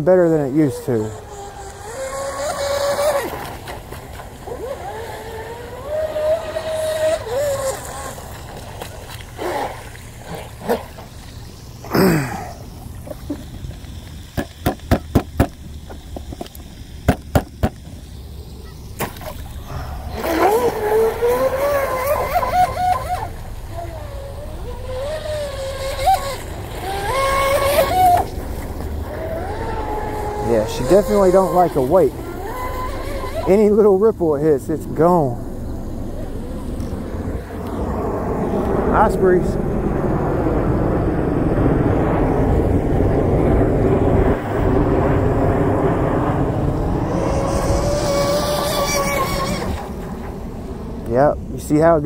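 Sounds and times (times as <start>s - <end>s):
electric motor whine: 0.4s - 50.9s.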